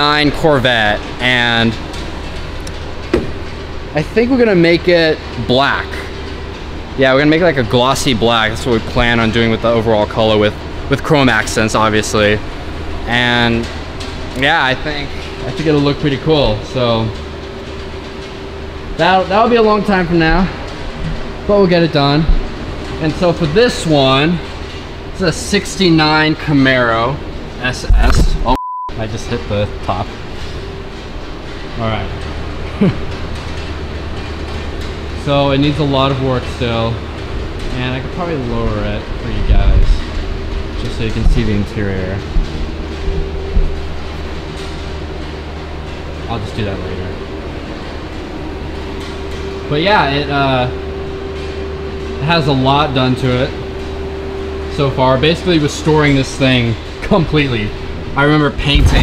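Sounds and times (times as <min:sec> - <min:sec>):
constant humming tone: 0:00.0 - 0:59.0
short thump: 0:03.1 - 0:03.4
low rumble: 0:58.5 - 0:59.0.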